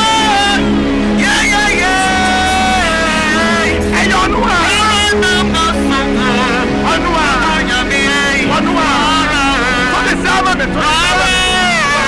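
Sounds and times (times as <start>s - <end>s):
held accompaniment notes: 0.0s - 12.0s
man singing into a microphone: 0.0s - 12.0s.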